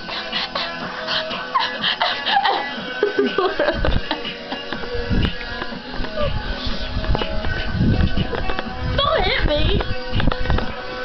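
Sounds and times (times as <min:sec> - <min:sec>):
pop music from a radio: 0:00.0 - 0:11.0.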